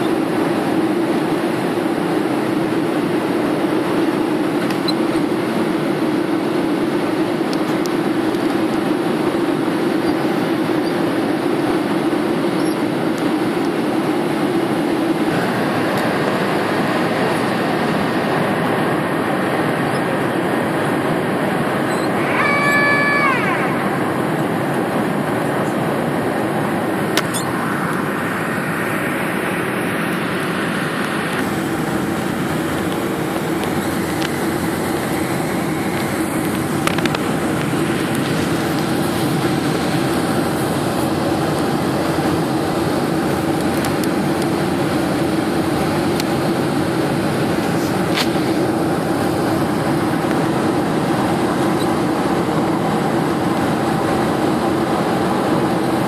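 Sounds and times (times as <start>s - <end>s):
jet engines roaring: 0.0s - 56.0s
airflow: 11.3s - 46.0s
rising whine: 12.8s - 44.9s.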